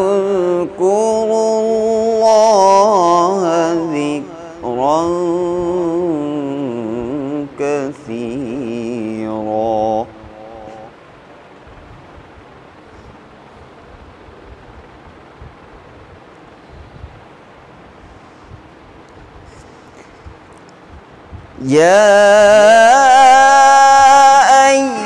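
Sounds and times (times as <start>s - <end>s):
man chanting melodically: 0.0s - 11.0s, 21.6s - 25.0s.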